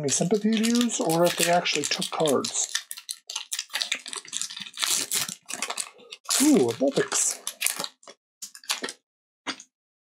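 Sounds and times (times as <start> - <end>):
foil wrapper crinkling and tearing: 0.0 - 9.0.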